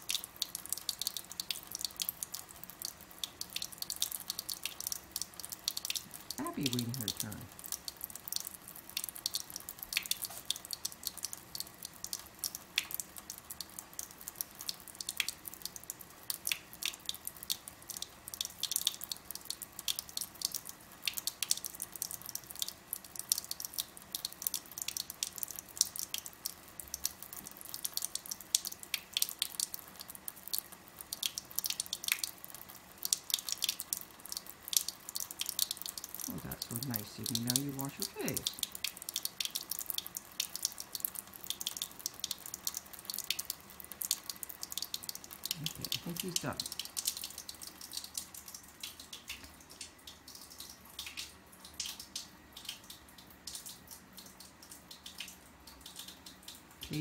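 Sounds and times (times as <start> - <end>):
faint water trickle: 0.0 - 57.0
small splashes and drips: 0.0 - 57.0.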